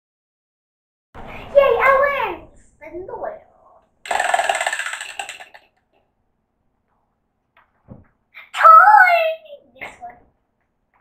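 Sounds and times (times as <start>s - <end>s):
prize wheel pegs clicking: 4.1s - 5.7s.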